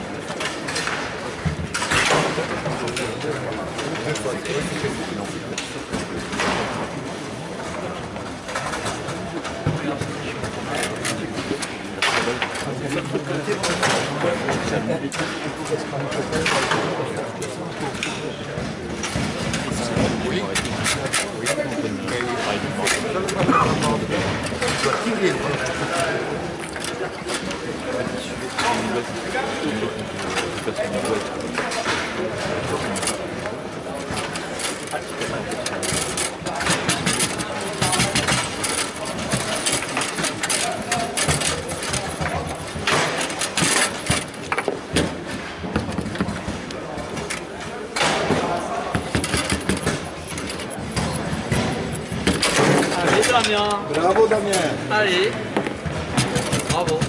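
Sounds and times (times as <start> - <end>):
murmur of voices: 0.0 - 57.0.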